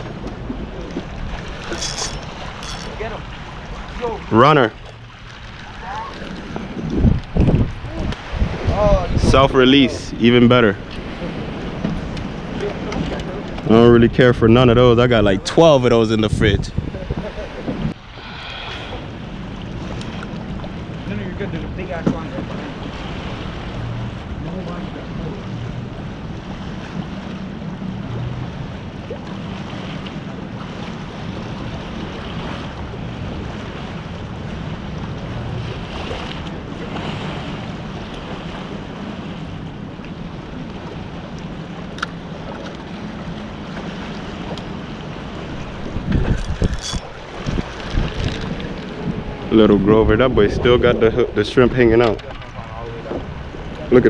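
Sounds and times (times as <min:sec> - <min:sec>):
ocean waves: 0:00.0 - 0:54.0
wind buffeting microphone: 0:00.0 - 0:54.0.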